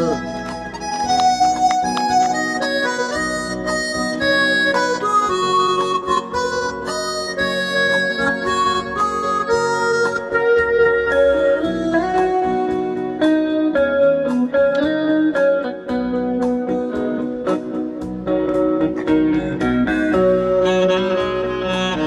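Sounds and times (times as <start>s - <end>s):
saxophone melody: 0.0s - 13.4s, 19.3s - 22.0s
band accompaniment: 0.0s - 22.0s.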